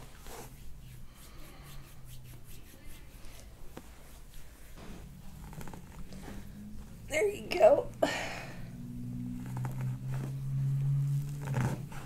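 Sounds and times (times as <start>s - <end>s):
breathy exhale: 8.0s - 8.8s.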